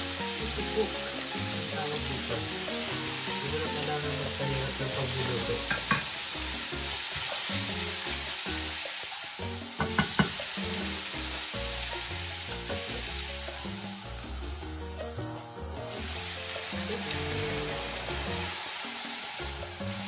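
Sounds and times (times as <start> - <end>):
food sizzling in a pan: 0.0 - 20.0
wooden spoon knocking on pan: 5.6 - 6.2, 9.7 - 10.8.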